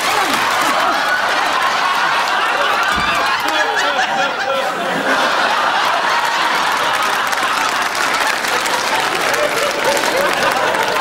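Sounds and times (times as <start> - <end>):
studio audience applauding: 0.0 - 4.3, 5.1 - 11.0
audience laughing: 0.0 - 11.0.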